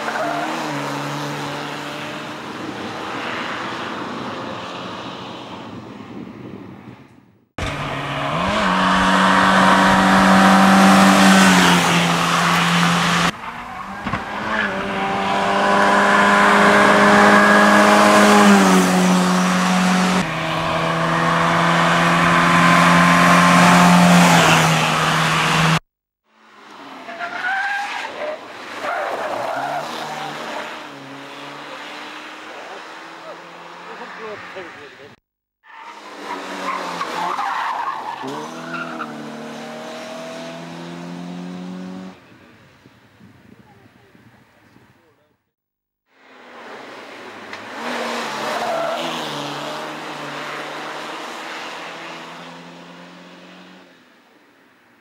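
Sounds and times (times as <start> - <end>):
racing car engines at high revs: 7.6 - 25.8, 27.8 - 42.3, 46.2 - 53.9.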